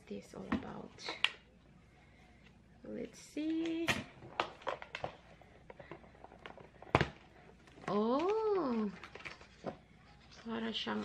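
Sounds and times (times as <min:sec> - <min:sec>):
plastic packaging crinkling: 0:04.2 - 0:11.0.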